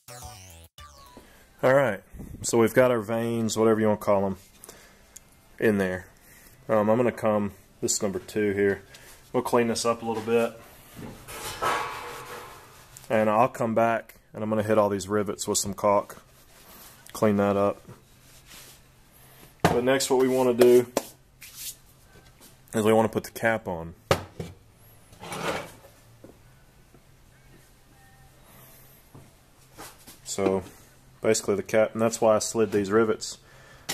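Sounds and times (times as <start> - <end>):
cloth rubbing on plastic pipe: 18.2 - 18.9.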